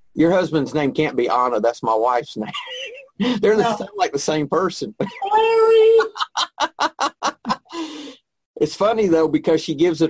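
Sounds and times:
person laughing: 2.4 - 3.9, 5.0 - 8.0.

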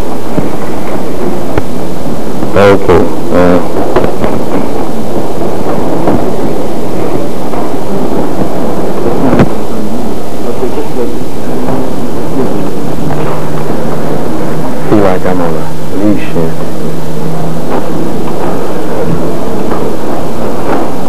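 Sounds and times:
distorted microphone rumbling: 0.0 - 21.0
person speaking: 6.9 - 20.8.

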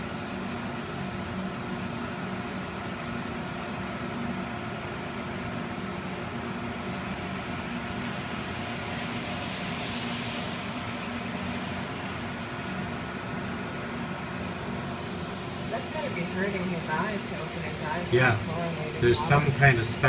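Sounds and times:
steady mechanical hum: 0.0 - 20.0.

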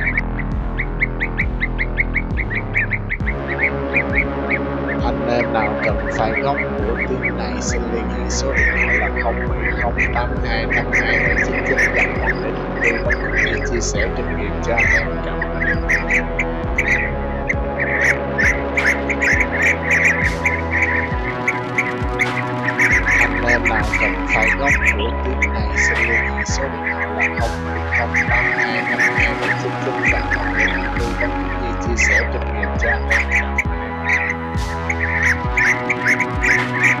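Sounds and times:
bird chirping: 0.0 - 37.0
sustained musical tones: 0.0 - 37.0.

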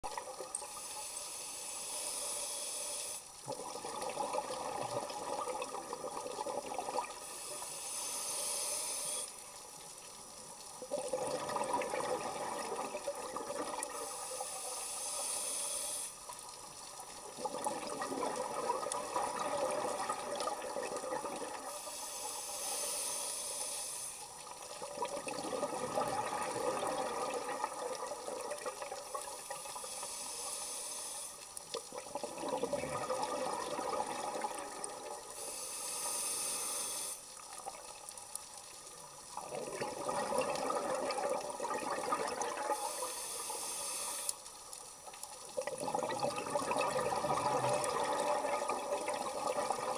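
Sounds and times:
hissing regulator inhale: 0.6 - 3.4, 7.1 - 9.6, 13.8 - 16.4, 21.6 - 24.5, 29.0 - 31.7, 35.2 - 37.4, 42.6 - 44.6
burble of exhaled bubbles: 3.4 - 7.2, 10.8 - 14.0, 17.2 - 21.7, 24.7 - 29.1, 31.8 - 35.3, 39.3 - 42.8, 45.5 - 49.9.

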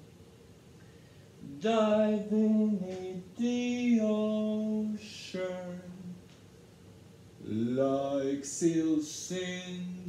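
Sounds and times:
man singing long held notes: 1.4 - 6.2, 7.4 - 10.0.

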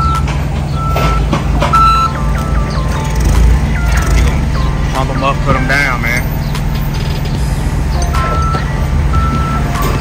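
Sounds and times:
forklift reversing alarm beeping: 0.0 - 10.0
low engine rumble: 0.0 - 10.0.

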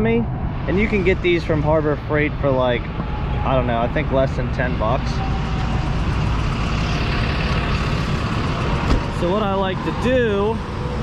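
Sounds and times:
truck engine idling: 0.8 - 11.0.

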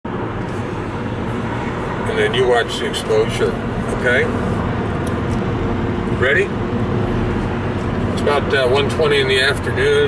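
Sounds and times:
car driving heard from cabin: 0.1 - 10.0.

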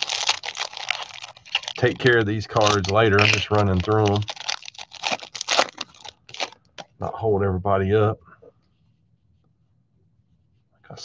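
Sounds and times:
foil wrapper tearing and crinkling: 0.0 - 6.9.

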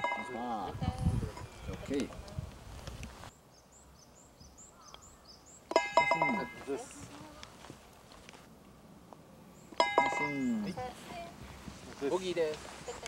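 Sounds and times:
faint high bird chirps: 3.3 - 6.5.

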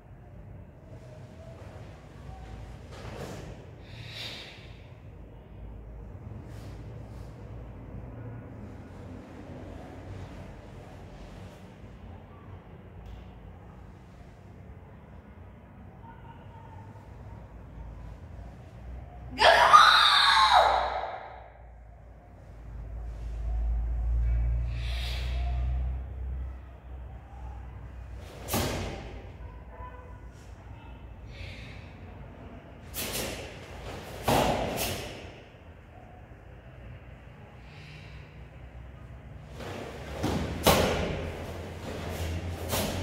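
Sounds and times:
person shouting: 19.3 - 21.2.

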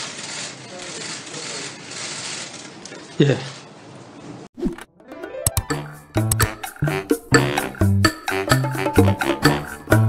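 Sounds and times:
murmur of people in large room: 0.0 - 3.8.

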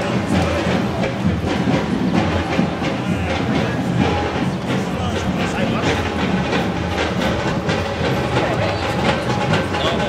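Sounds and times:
indistinct crowd voices: 0.0 - 10.0
street background noise: 0.0 - 10.0.

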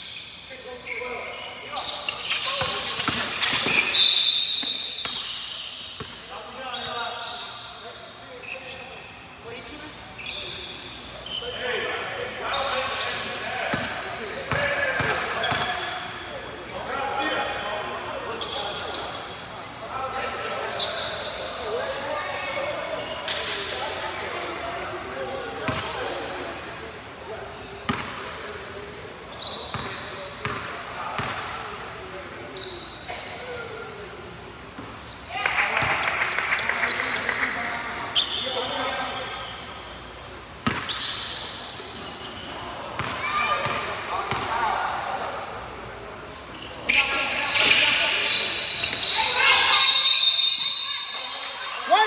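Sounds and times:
voices in gym hall: 0.0 - 52.0.

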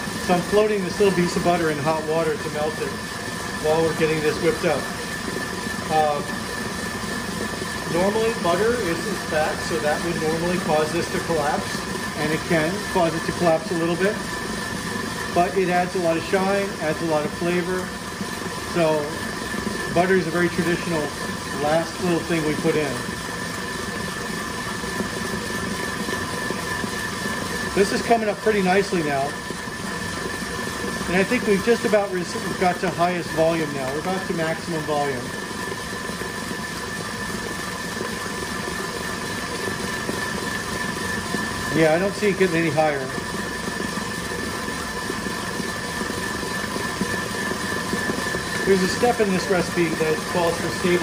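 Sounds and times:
motor whine: 0.0 - 51.0
stand mixer whisking: 0.0 - 51.0.

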